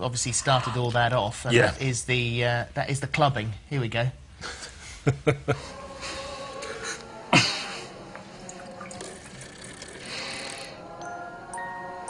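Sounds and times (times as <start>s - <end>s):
drink in a glass: 8.4s - 10.8s.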